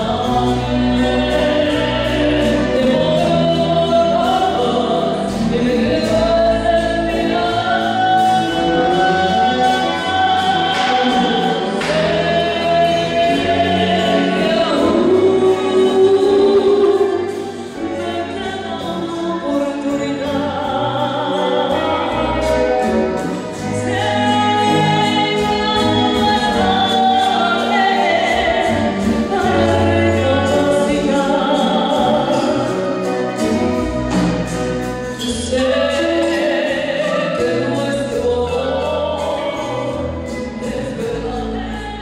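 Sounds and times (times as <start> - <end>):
musical accompaniment: 0.0 - 42.0
woman singing into a microphone: 0.0 - 42.0.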